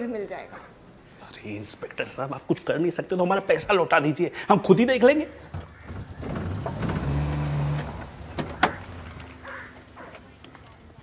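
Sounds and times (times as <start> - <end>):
van engine humming: 5.4 - 11.0.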